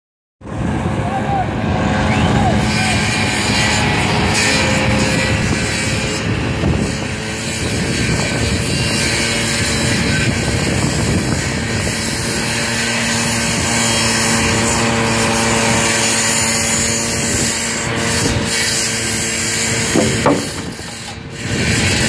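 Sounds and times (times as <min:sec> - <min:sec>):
leaf blower engine running: 0:00.5 - 0:07.5, 0:08.7 - 0:21.4.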